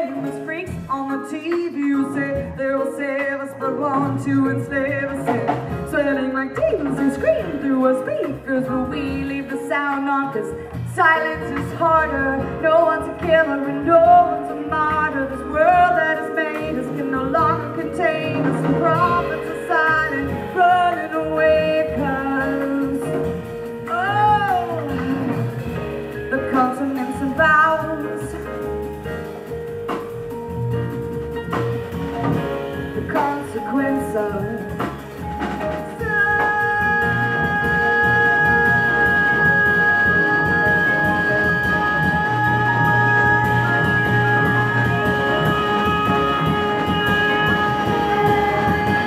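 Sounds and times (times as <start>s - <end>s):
drums: 0.0s - 49.0s
live jazz band music: 0.0s - 49.0s
upright bass: 0.0s - 49.0s.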